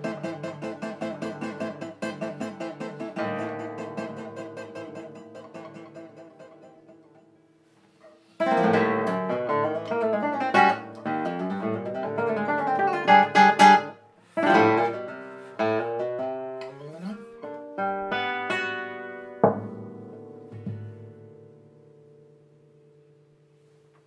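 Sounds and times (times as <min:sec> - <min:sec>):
solo classical guitar: 0:00.0 - 0:24.0.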